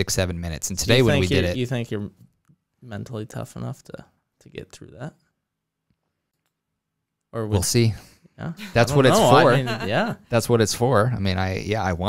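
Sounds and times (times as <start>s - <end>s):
man speaking: 0.0s - 2.2s, 7.4s - 12.0s.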